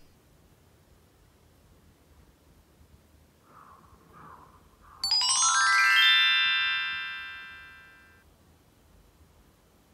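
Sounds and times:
bell-like chime tones: 5.0s - 8.2s.

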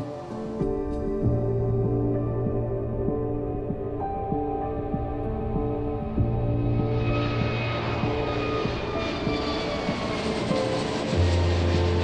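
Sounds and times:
music with long held notes: 0.0s - 12.0s
jet engines roaring: 6.3s - 12.0s.

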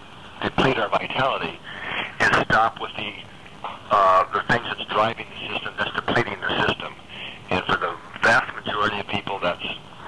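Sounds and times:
person talking: 3.9s - 9.8s.

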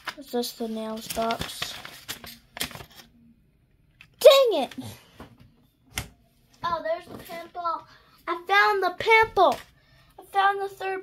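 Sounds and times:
paper rustling and tapping: 0.0s - 3.1s.

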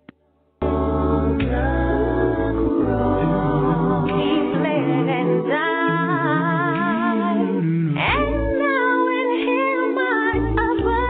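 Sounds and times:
a cappella gospel singing: 0.6s - 11.0s.

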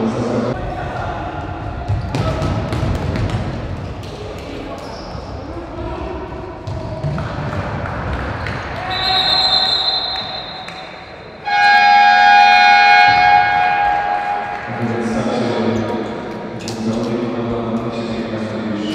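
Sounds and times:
high whistle tone: 8.9s - 10.9s, 11.5s - 14.6s
loud signal blast: 11.5s - 14.6s.

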